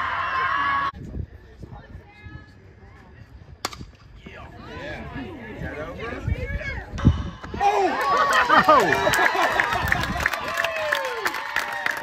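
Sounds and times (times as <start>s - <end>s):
bat cracking ball: 3.6s - 4.1s.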